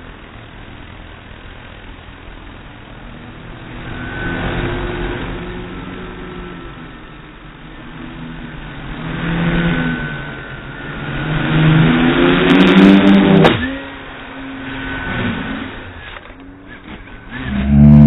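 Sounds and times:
drone propellers whining: 2.2s - 18.0s.

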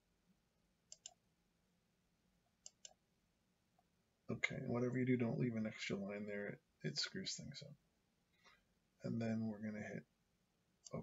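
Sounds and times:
computer mouse clicks: 0.9s - 1.2s, 2.6s - 3.0s.

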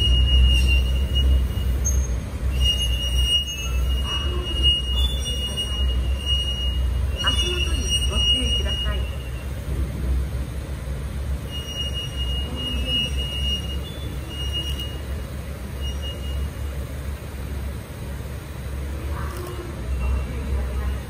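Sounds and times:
short high-pitched squeals: 0.0s - 9.6s, 11.4s - 16.8s
electric train equipment hum: 0.0s - 21.0s.

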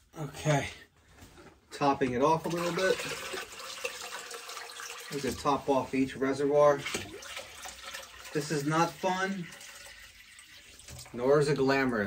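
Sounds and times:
water pouring into tub: 2.4s - 11.6s.

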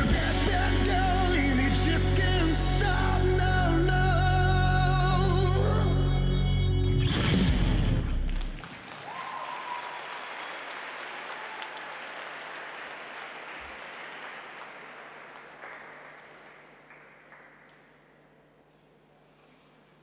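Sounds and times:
music playing: 0.0s - 8.6s
audience applauding: 7.9s - 18.0s.

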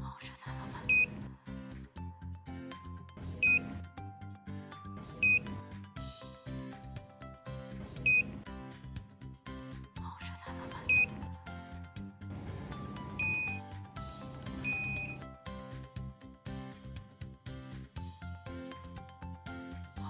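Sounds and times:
background music with bass line: 0.5s - 20.0s
short high electronic beeps: 14.5s - 15.2s.

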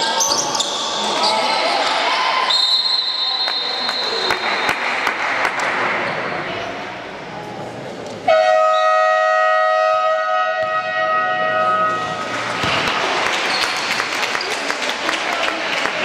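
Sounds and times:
scoreboard horn tone: 8.3s - 12.3s.

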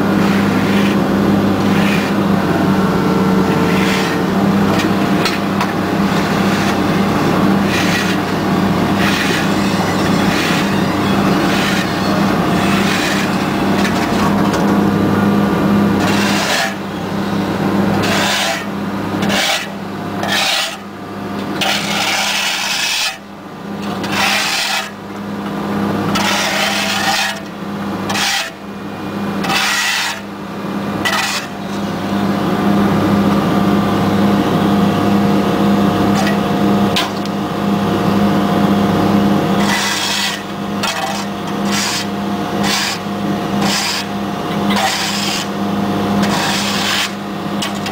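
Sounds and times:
diesel engine humming: 0.0s - 20.2s
rough rasping noise: 1.6s - 2.2s, 3.3s - 14.6s, 16.0s - 17.4s.

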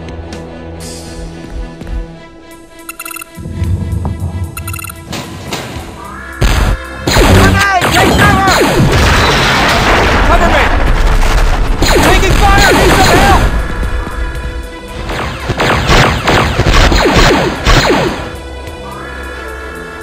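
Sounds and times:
laser blaster shots: 6.4s - 10.0s, 11.8s - 13.4s, 15.1s - 18.3s
booms and crashes: 6.4s - 13.8s.

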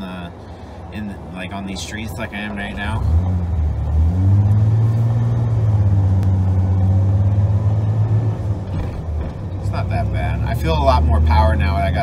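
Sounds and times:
truck engine heard from cab: 0.0s - 12.0s.

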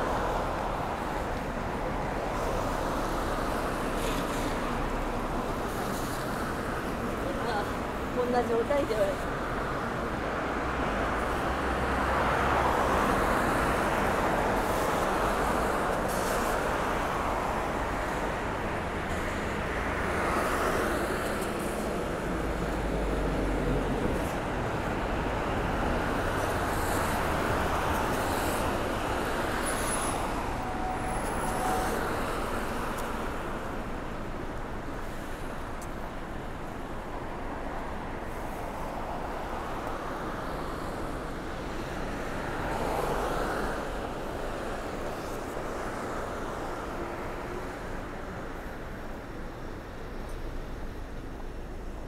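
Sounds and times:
cars passing on wet road: 0.0s - 52.0s.

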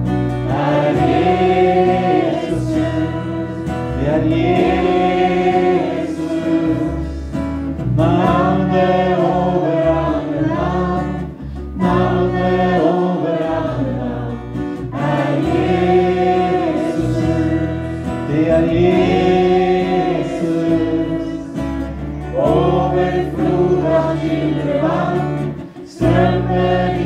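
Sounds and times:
electric bass: 0.0s - 27.0s
electric guitar: 0.0s - 27.0s
voices singing together: 0.3s - 27.0s.

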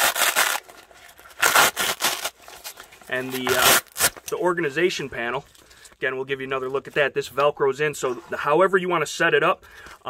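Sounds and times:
fabric rasping and rustling: 0.0s - 2.8s.

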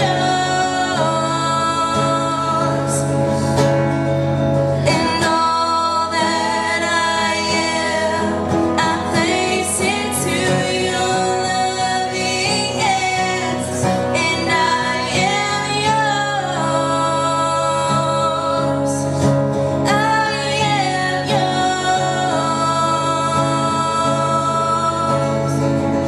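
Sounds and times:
guitar: 0.0s - 26.0s
woman singing into a microphone: 0.0s - 26.0s.

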